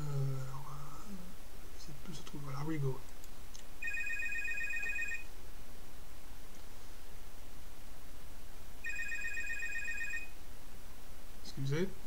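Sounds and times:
electronic telephone ring: 3.8s - 5.3s, 8.8s - 10.3s.

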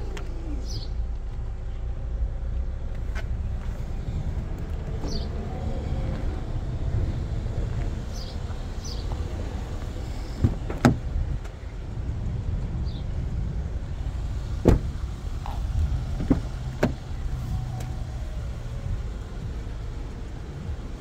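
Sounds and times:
steady low rumble: 0.0s - 21.0s
car door shutting: 10.3s - 11.2s, 14.6s - 18.1s
car door latch clicks: 10.4s - 11.0s, 14.6s - 15.0s, 16.1s - 17.0s.

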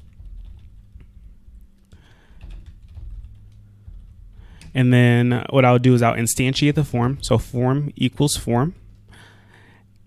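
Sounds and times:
computer keyboard typing: 0.0s - 4.8s
low steady hum: 0.0s - 10.0s.

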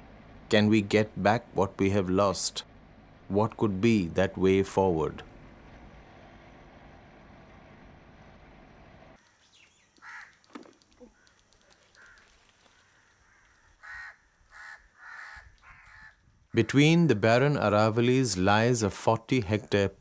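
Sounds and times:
bird giving short calls: 9.3s - 16.2s.

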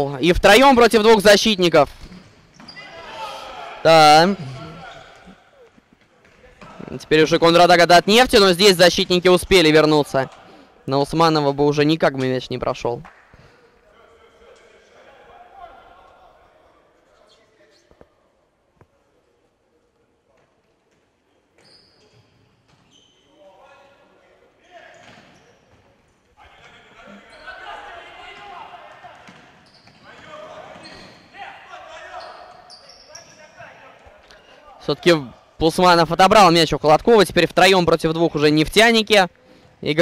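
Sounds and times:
players shouting: 2.7s - 5.6s, 26.4s - 34.2s
ball bouncing on wooden court: 29.2s - 30.0s.

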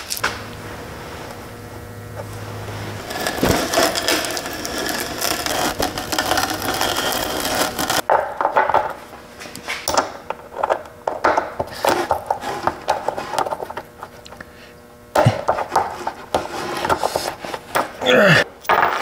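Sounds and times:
wood scraping and rattling: 2.2s - 9.0s.

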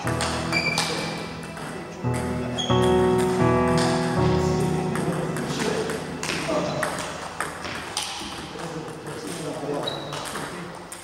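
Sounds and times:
table tennis ball pings: 0.0s - 4.2s.

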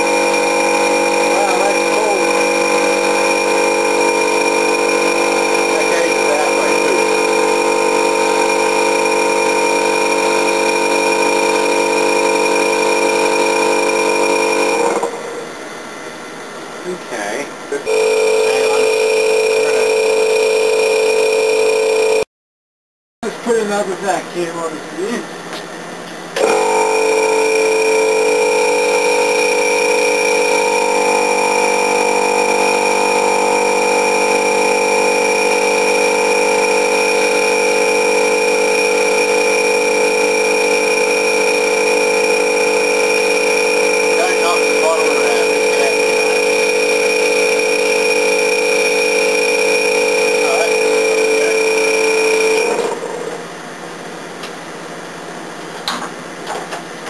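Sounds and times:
electrical appliance hum: 0.0s - 22.3s, 23.2s - 57.0s.

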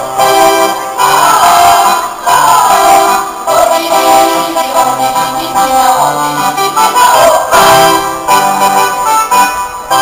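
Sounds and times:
accordion: 0.0s - 10.0s
women's choir singing: 0.1s - 8.4s.

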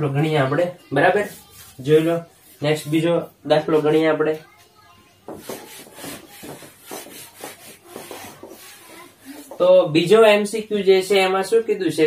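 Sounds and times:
eraser rubbing a whiteboard: 1.2s - 2.6s, 5.2s - 9.6s.

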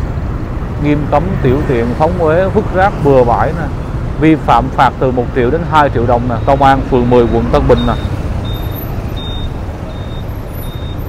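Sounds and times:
motorbikes passing: 0.0s - 11.0s
traffic rumble: 0.0s - 11.0s
truck passing: 0.0s - 11.0s
faint high beep: 6.3s - 11.0s.

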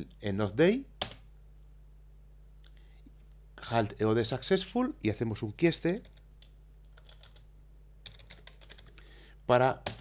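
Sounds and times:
computer keyboard typing: 1.0s - 1.2s, 6.0s - 9.0s, 9.8s - 10.0s.

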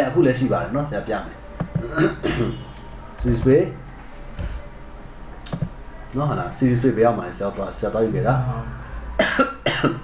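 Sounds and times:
short coughs: 1.8s - 2.6s, 9.2s - 10.0s.

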